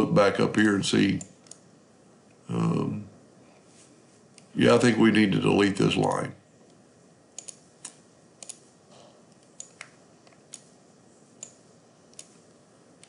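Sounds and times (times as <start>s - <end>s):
computer mouse clicks: 0.6s - 1.6s, 7.4s - 8.6s, 9.3s - 10.7s, 11.4s - 12.4s.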